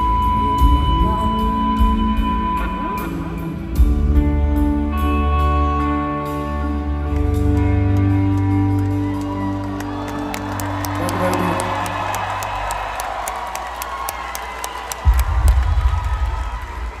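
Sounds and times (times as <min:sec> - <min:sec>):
crowd cheering and clapping: 0:06.8 - 0:17.0
loud low thumps: 0:15.0 - 0:17.0.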